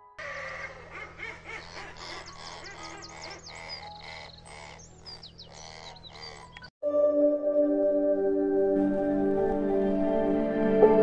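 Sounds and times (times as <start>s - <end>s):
chorus of bird calls: 0.2s - 6.7s.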